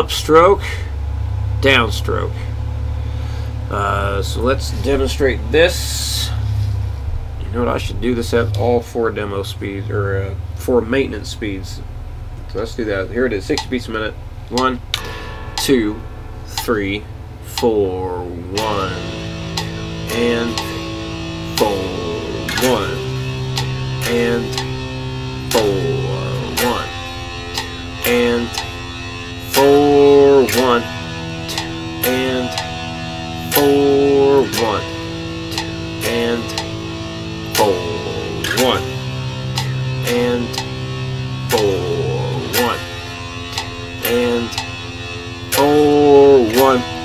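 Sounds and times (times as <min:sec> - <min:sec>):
electric guitar power chords: 0:00.0 - 0:47.0.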